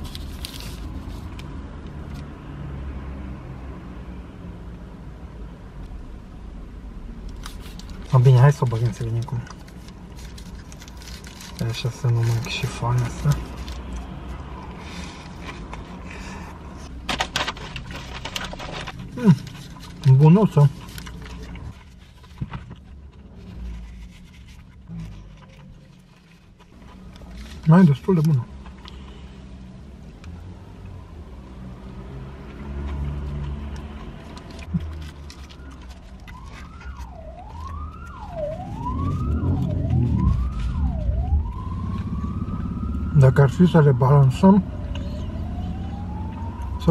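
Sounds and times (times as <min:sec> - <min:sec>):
paper wrapper crackling and rustling: 0:00.0 - 0:01.5, 0:07.3 - 0:29.0, 0:32.7 - 0:42.4
low vehicle rumble: 0:00.0 - 0:46.9
person chewing food: 0:32.5 - 0:39.8
emergency siren wailing: 0:34.9 - 0:46.9.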